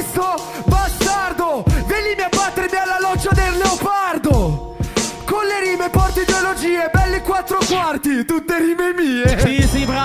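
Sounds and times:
man rapping over a beat: 0:00.0 - 0:10.0
deep bass thumps: 0:03.2 - 0:03.7, 0:04.3 - 0:05.0, 0:07.0 - 0:07.3.

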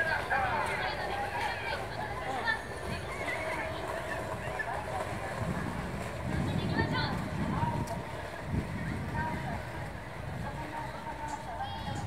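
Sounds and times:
indistinct crowd voices: 0:00.0 - 0:12.0
wind buffeting microphone: 0:00.0 - 0:12.0.

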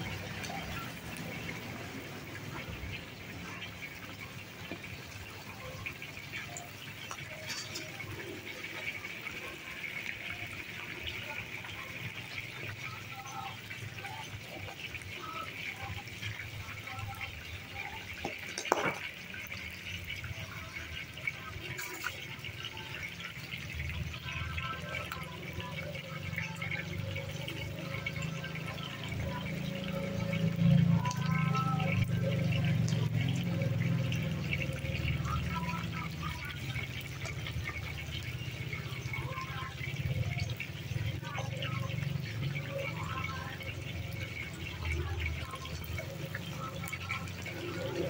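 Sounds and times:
deep-frying oil sizzling: 0:00.0 - 0:48.0.

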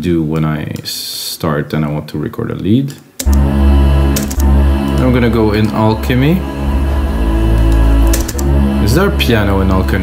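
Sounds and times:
ambient synth pad: 0:03.2 - 0:10.0
deep steady bass: 0:03.2 - 0:10.0.

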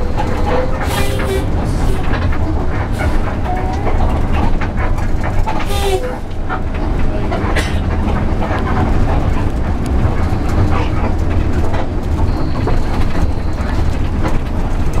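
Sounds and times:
bus engine rumble: 0:00.0 - 0:15.0
rattles and clicks from bus body: 0:00.0 - 0:15.0.

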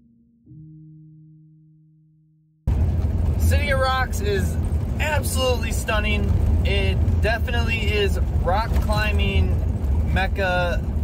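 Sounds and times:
van cabin rumble while driving: 0:02.7 - 0:11.0
man talking: 0:03.4 - 0:10.9.

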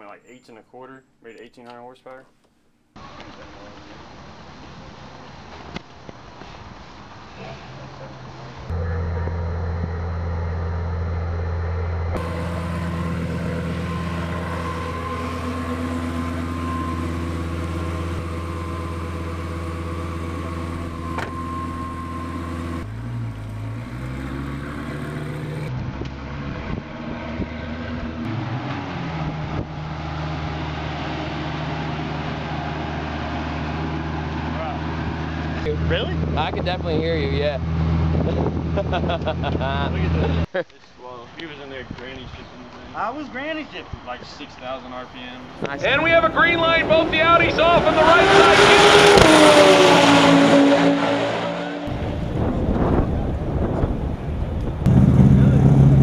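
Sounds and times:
car engine idling: 0:08.5 - 0:25.7, 0:51.8 - 0:56.0
engine throttle blips: 0:08.7 - 0:40.5, 0:45.2 - 0:56.0.

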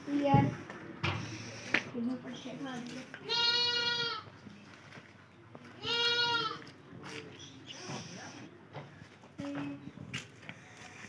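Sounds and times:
goat bleating: 0:03.2 - 0:04.3, 0:05.8 - 0:06.7.

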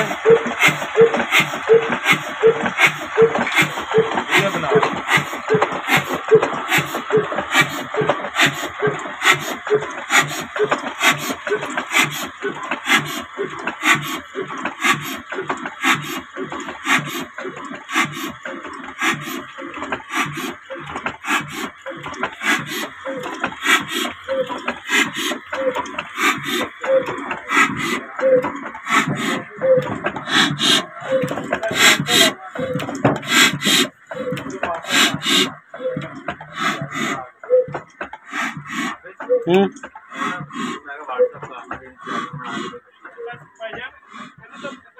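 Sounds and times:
valve gear clatter: 0:00.0 - 0:40.8
diesel engine knocking at idle: 0:00.0 - 0:44.9.

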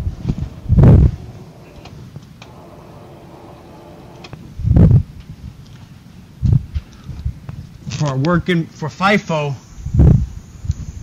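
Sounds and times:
room hum: 0:00.1 - 0:04.4.

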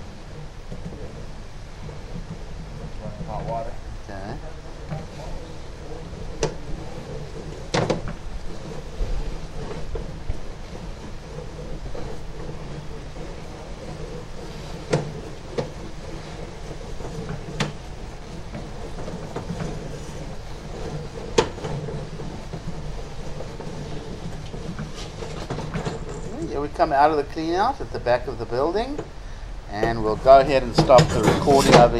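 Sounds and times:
cable rumbling and rubbing: 0:00.0 - 0:31.9
sharp clicks and knocks: 0:00.3 - 0:03.8, 0:05.9 - 0:31.9.

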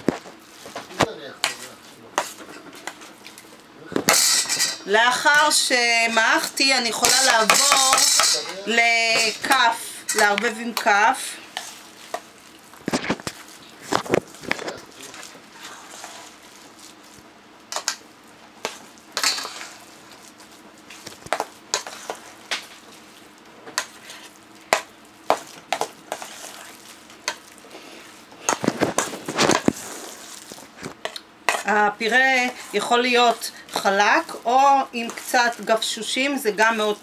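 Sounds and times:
spoon scraping metal bowl: 0:07.0 - 0:11.0, 0:31.0 - 0:33.5.

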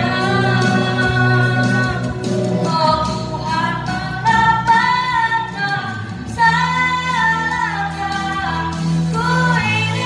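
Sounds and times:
pop backing track: 0:00.0 - 0:10.0.

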